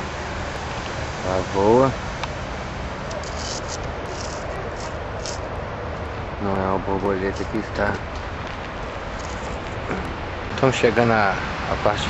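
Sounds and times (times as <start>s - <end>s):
outdoor background noise: 0.0s - 12.0s
man speaking: 1.2s - 2.0s, 4.0s - 4.9s, 6.4s - 8.0s, 9.9s - 12.0s
faint scuffs: 7.3s - 9.9s.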